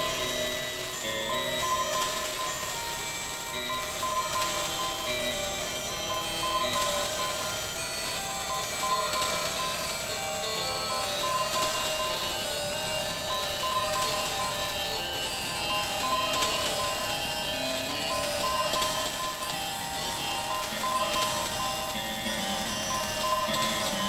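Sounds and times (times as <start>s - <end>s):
layered held tones music: 0.0s - 24.0s.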